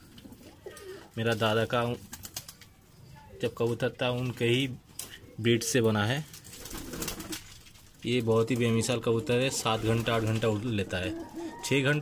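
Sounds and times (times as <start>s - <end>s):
pigeons cooing softly: 0.0s - 1.2s, 8.6s - 12.0s.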